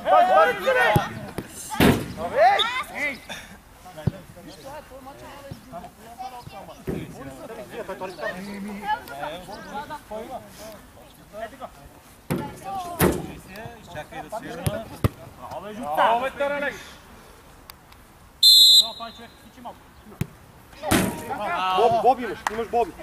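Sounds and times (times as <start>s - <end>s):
football being kicked: 14.6s - 15.2s
referee's whistle blast: 18.4s - 19.4s.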